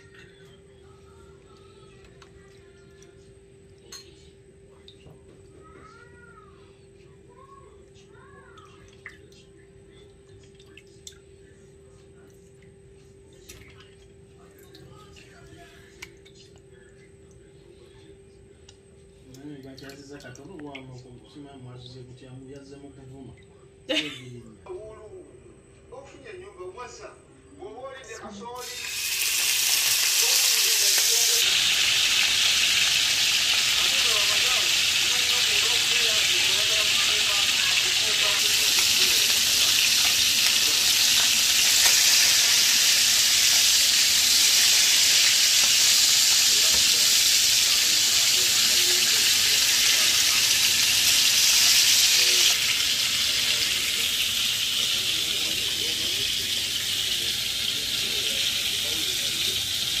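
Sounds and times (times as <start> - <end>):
fish sizzling in hot oil: 28.6 - 60.0.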